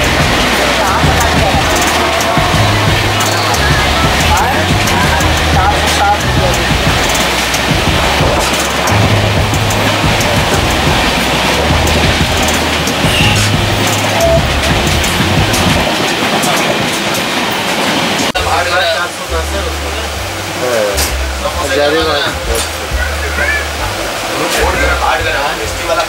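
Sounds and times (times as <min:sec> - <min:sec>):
low bass line music: 0:00.0 - 0:15.9, 0:18.4 - 0:26.0
rail clicks: 0:00.0 - 0:19.2
train running noise: 0:00.0 - 0:26.0.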